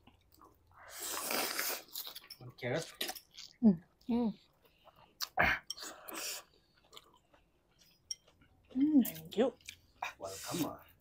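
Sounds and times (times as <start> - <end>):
chewing noises: 0.0 - 11.0
person slurping noodles: 0.9 - 2.0.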